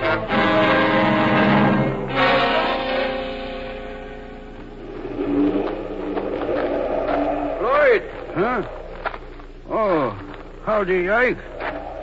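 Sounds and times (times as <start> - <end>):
orchestral music: 0.0 - 4.6.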